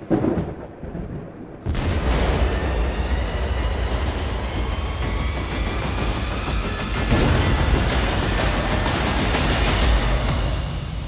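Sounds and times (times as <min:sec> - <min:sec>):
boom: 0:01.6 - 0:06.1.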